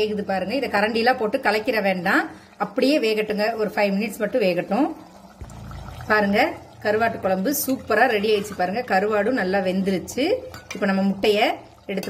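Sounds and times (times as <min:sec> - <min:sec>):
low steady hum: 0:00.1 - 0:12.0
woman speaking: 0:06.1 - 0:12.0.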